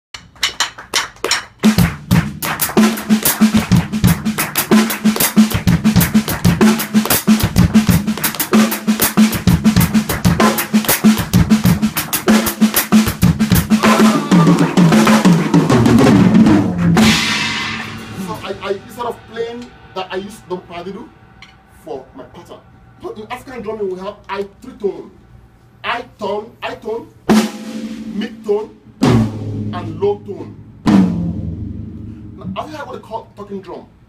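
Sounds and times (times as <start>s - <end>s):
drum kit playing: 0.1s - 23.8s, 27.3s - 33.2s
cymbal crash: 13.7s - 23.8s, 29.0s - 32.6s.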